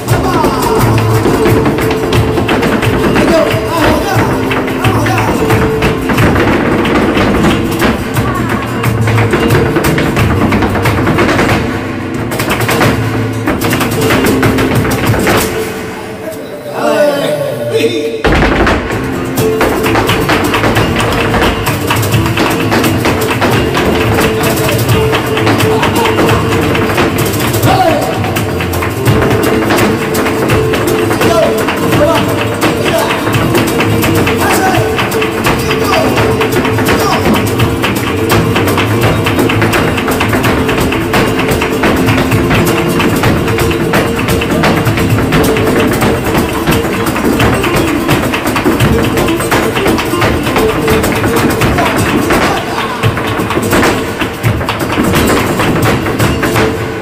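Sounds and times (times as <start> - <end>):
dancer's percussive footwork: 0.0 - 16.3, 18.2 - 57.0
guitar playing: 0.0 - 57.0.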